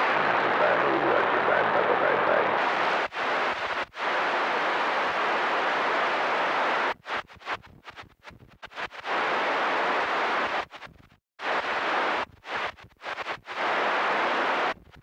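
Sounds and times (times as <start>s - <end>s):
radio static hiss: 0.0s - 15.0s.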